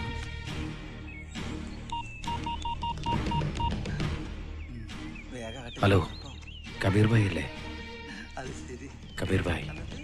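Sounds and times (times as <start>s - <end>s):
background music: 0.0s - 10.0s
phone keypad beeps: 1.9s - 3.8s.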